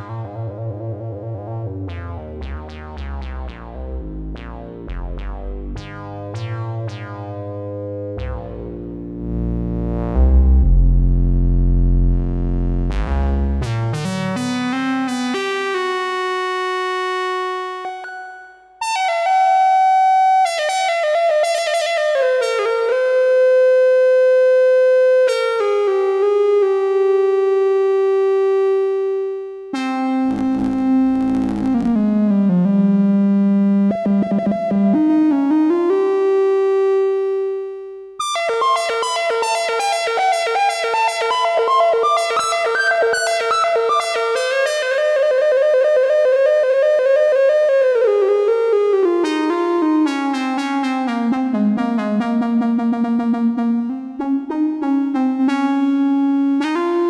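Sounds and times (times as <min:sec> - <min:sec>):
analog synthesizer notes: 0:00.0 - 0:57.0
synthesizer steady note: 0:02.0 - 0:14.6, 0:35.9 - 0:45.2.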